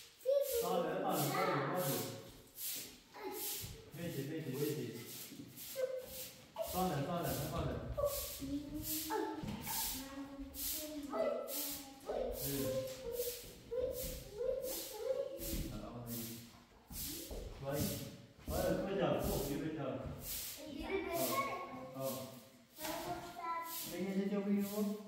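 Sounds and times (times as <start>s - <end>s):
broom sweeping cement floor: 0.0s - 25.0s
people talking: 0.3s - 2.2s, 6.6s - 16.3s, 17.0s - 19.8s, 20.6s - 25.0s.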